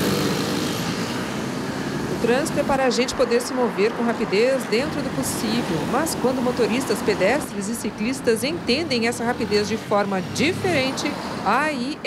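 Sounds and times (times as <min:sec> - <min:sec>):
motorcycles and cars passing: 0:00.0 - 0:12.0.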